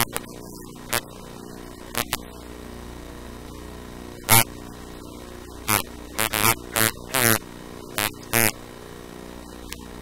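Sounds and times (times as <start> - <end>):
distorted buzzing voice: 0.0 - 10.0
electrical hum: 0.0 - 10.0.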